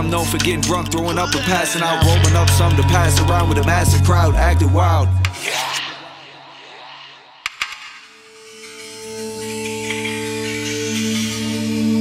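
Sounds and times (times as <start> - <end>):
sharp percussive clicks: 7.4 - 11.2.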